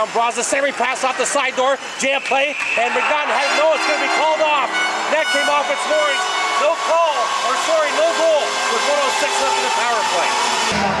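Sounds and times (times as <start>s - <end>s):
commentator talking: 0.0s - 10.4s
steady hum: 3.2s - 10.0s.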